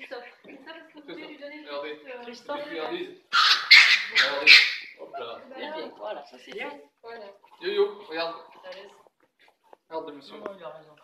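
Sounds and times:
dog yelping: 3.3 - 5.0.

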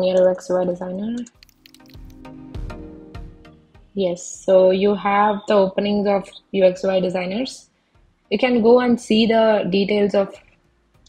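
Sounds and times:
soft background music: 0.0 - 11.0
computer keyboard typing: 1.2 - 2.3.

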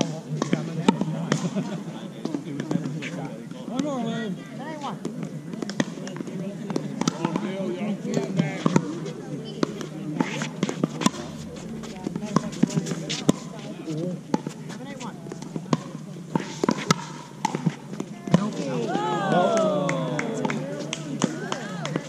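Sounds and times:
people talking: 0.0 - 17.0, 17.6 - 22.0.

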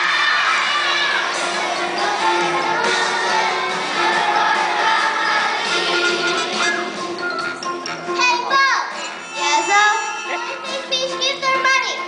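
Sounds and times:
children shouting and cheering: 0.0 - 7.0.

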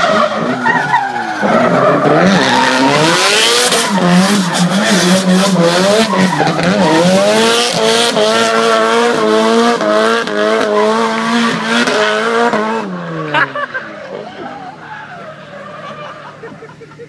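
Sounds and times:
tyres screeching: 0.0 - 8.7
car engine revving high: 0.0 - 16.6.

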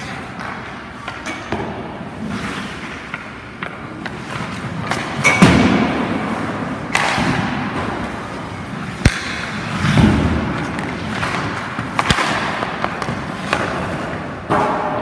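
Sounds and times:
pucks hitting goalie pads: 0.0 - 15.0
skates scraping on ice: 0.0 - 15.0
sticks striking pucks: 0.0 - 15.0.

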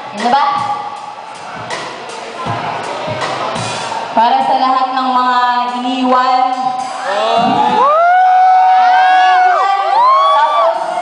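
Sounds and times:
kick drum thumps: 7.4 - 7.8.

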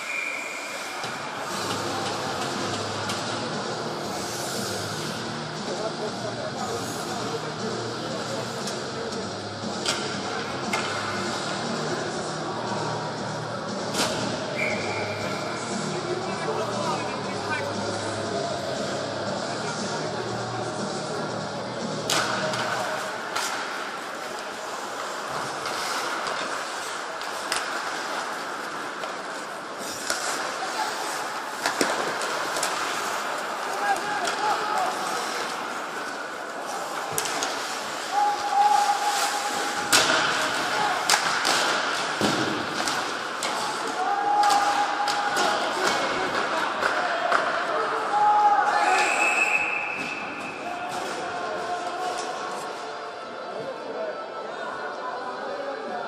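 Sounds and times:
arena noise: 0.0 - 56.0
hockey sticks and puck knocking: 25.3 - 30.5, 31.6 - 36.2, 39.8 - 47.7
people shouting: 38.0 - 41.2, 43.7 - 45.8.

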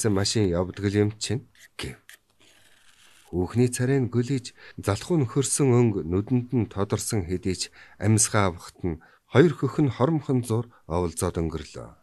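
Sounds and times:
man reading aloud: 0.0 - 2.1, 3.3 - 12.0.

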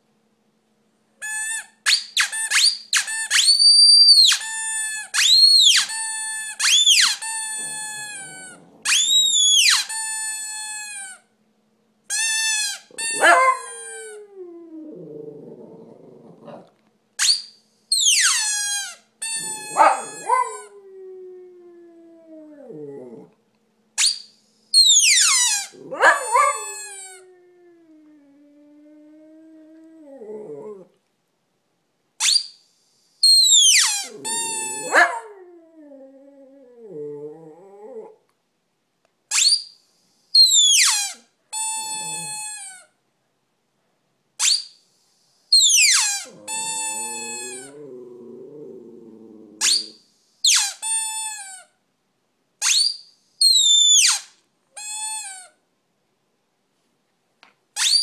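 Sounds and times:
dog high-pitched squeals: 1.2 - 11.2, 12.1 - 14.2, 17.2 - 20.7, 24.0 - 27.2, 32.2 - 32.6, 33.2 - 35.3, 39.3 - 39.8, 40.4 - 42.9, 44.4 - 44.8, 45.5 - 47.9, 49.6 - 51.7, 52.6 - 55.6, 57.8 - 58.0
dog howling: 13.0 - 16.5, 19.4 - 23.3, 25.2 - 30.9, 33.9 - 38.2, 46.2 - 50.0.

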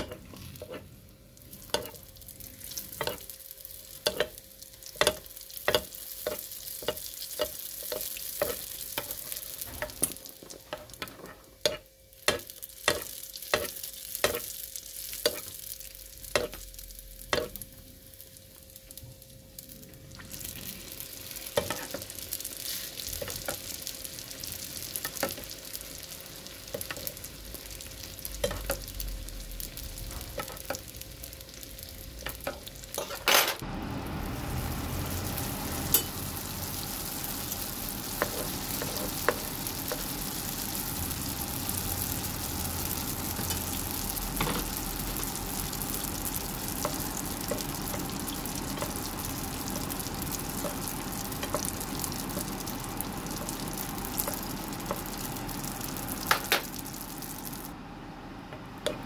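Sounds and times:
dough sizzling in hot oil: 0.0 - 57.8.

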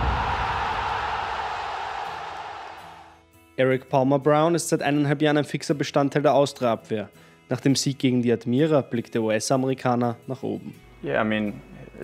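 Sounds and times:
broad rushing noise: 0.0 - 2.8.

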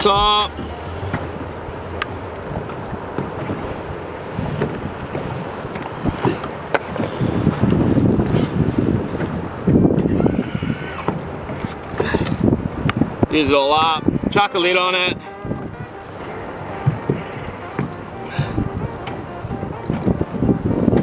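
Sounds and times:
water lapping at boat hull: 0.0 - 21.0
wind buffeting microphone: 0.0 - 21.0.

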